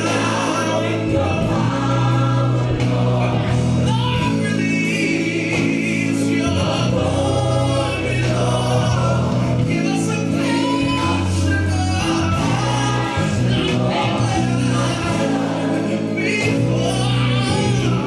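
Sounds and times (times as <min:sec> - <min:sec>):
gospel choir singing: 0:00.0 - 0:18.0
sustained bass notes: 0:00.0 - 0:18.0.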